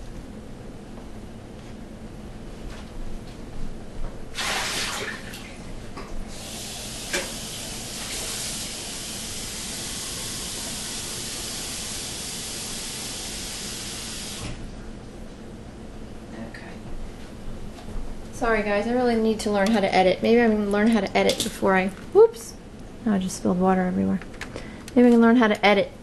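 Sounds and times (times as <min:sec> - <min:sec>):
water splashing into sink: 0:04.4 - 0:05.6.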